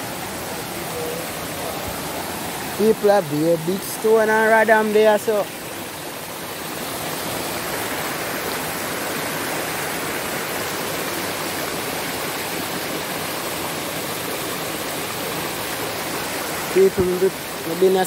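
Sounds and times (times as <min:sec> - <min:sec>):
river rushing over stones: 0:00.0 - 0:18.0.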